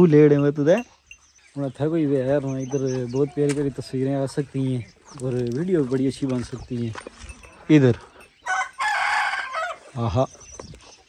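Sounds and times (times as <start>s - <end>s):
rooster crowing: 8.4s - 9.9s.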